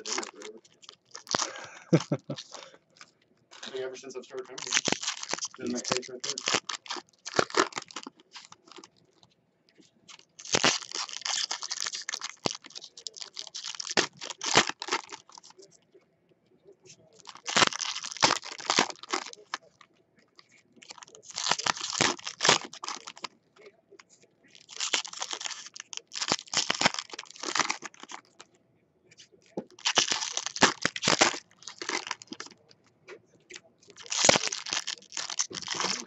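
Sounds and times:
foil wrappers crinkling: 0.0s - 9.0s, 10.1s - 15.8s, 17.1s - 23.3s, 24.4s - 28.4s, 29.5s - 32.6s, 33.6s - 36.0s.

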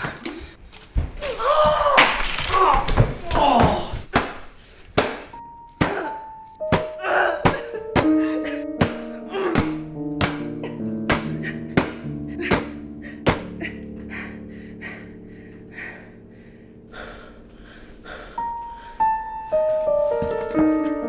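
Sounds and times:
music with sustained chord: 5.4s - 21.0s.

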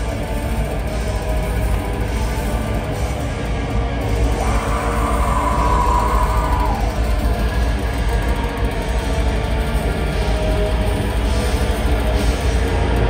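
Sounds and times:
live metal band: 0.0s - 13.0s.

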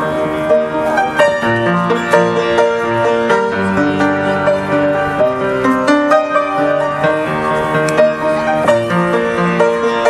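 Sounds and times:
upright piano melody: 0.0s - 10.0s.

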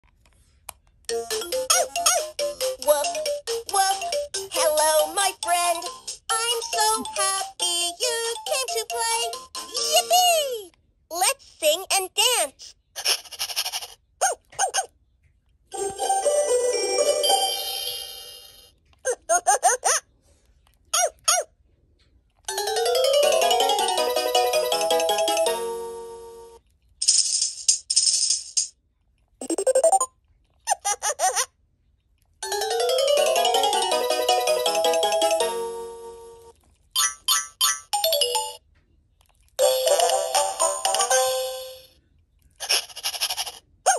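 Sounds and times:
electronic children's tune from toy: 1.1s - 10.2s, 15.8s - 18.6s, 22.5s - 26.6s, 32.4s - 38.6s, 39.6s - 42.0s.

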